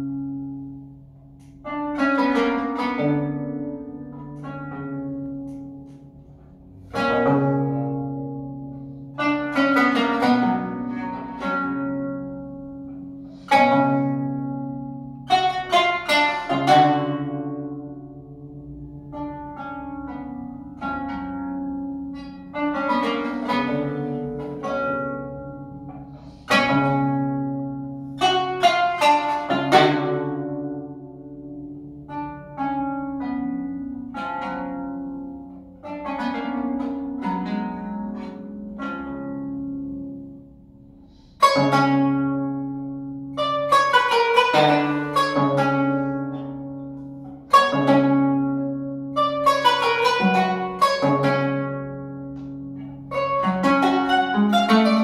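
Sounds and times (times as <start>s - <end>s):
plucked zither melody: 0.0s - 55.0s.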